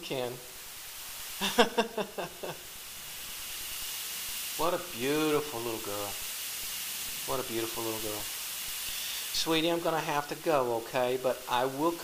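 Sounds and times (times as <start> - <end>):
steady high hiss: 0.0 - 12.0
man laughing: 1.4 - 2.7.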